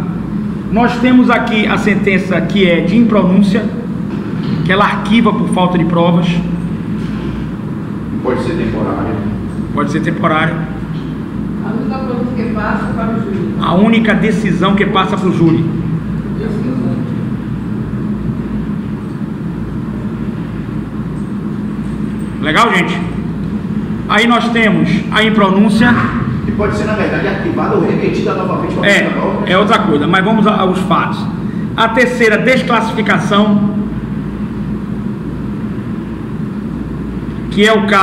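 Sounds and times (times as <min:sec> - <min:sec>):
low background hum: 0:00.0 - 0:38.0
low background rumble: 0:00.0 - 0:38.0.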